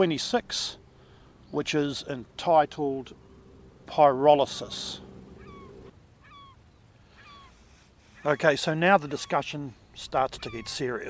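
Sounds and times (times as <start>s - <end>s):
faint bird calls: 4.5s - 11.0s.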